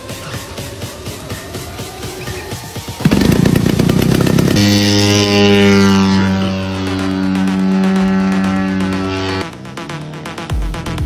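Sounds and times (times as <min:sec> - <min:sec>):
background music: 0:00.0 - 0:11.0
model airplane engine running: 0:03.0 - 0:08.5.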